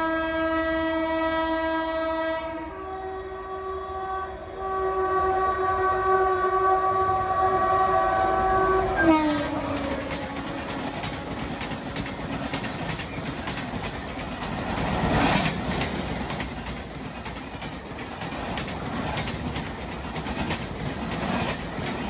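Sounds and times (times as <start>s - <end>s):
locomotive horn blast: 0.0s - 12.0s
passing train coaches rattling: 4.6s - 22.0s.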